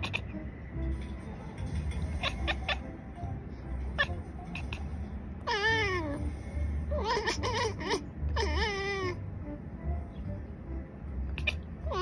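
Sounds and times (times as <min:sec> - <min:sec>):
cat meowing: 0:00.0 - 0:00.4, 0:02.2 - 0:02.8, 0:04.0 - 0:06.3, 0:06.9 - 0:09.2, 0:11.4 - 0:12.0.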